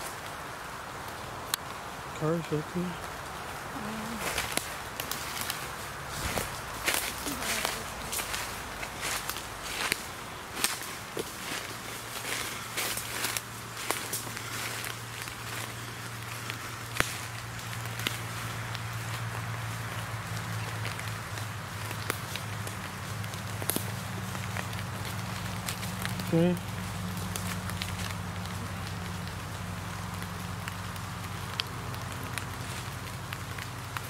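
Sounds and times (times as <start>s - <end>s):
footsteps crunching dry leaves: 2.8s - 34.0s.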